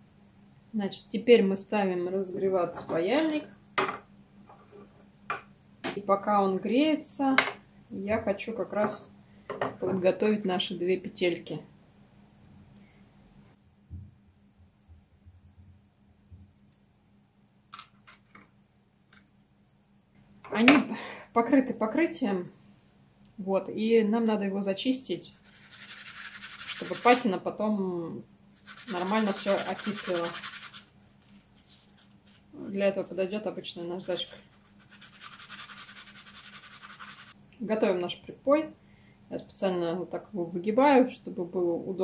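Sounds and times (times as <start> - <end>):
metal loop rubbed on sanding block: 25.4 - 27.2, 28.6 - 30.9, 34.0 - 37.4.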